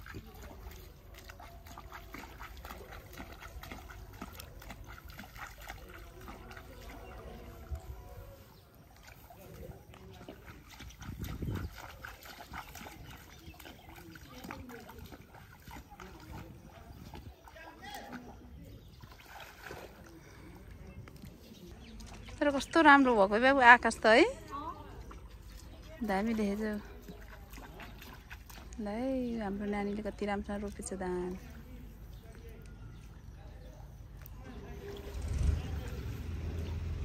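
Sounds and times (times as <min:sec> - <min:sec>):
faint voices: 0:00.0 - 0:37.0
small splashes and squelches in mud: 0:00.0 - 0:37.0.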